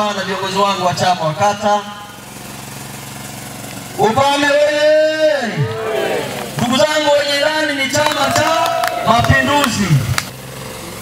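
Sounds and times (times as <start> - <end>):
low mechanical buzzing drone: 0.0 - 11.0.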